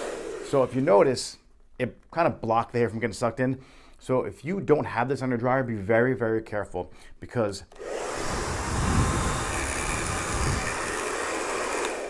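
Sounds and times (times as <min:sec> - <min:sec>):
hair dryer running: 0:00.0 - 0:00.9, 0:07.8 - 0:12.0.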